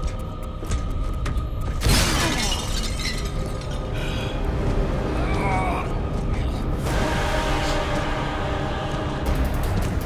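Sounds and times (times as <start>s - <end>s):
music: 0.0s - 10.0s
glass shattering: 1.8s - 3.9s.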